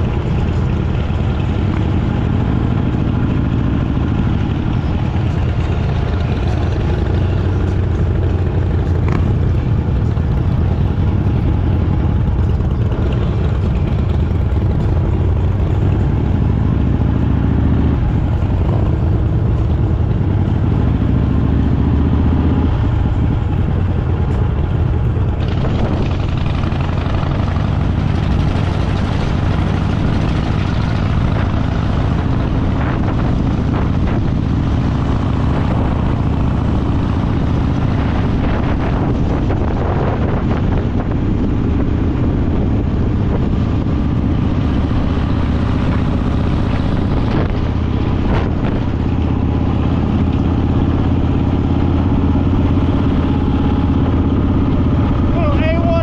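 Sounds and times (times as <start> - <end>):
motorcycle engine cruising: 0.0 - 56.0
road noise: 0.0 - 56.0
wind noise: 0.0 - 56.0.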